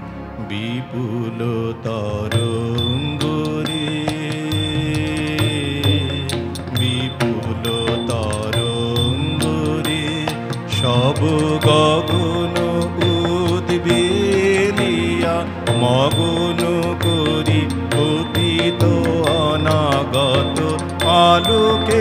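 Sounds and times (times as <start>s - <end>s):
instrumental accompaniment: 0.0s - 22.0s
man singing: 0.4s - 22.0s
light percussive strokes: 2.3s - 22.0s.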